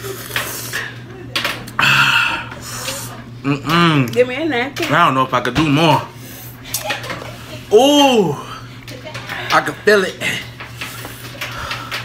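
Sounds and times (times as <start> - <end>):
person sighing heavily: 1.8 - 2.5.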